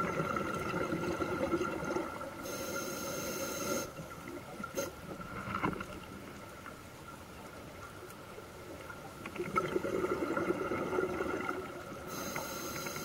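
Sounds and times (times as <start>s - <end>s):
exhaled bubbles underwater: 0.0s - 2.6s, 9.1s - 12.3s
faint steady tone: 0.0s - 13.0s
inhale hissing through regulator: 2.4s - 4.0s, 12.0s - 13.0s.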